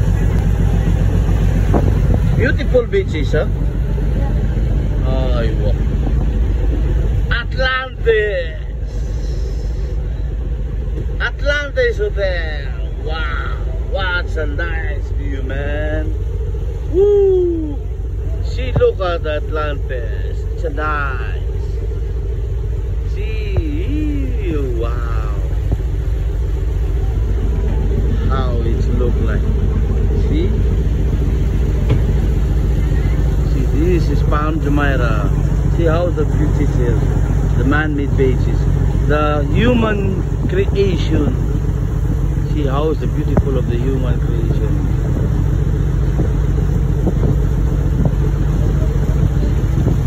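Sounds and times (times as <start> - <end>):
wind buffeting microphone: 0.0 - 7.3, 43.0 - 50.0
boat engine rumble: 0.0 - 50.0
water: 0.0 - 50.0.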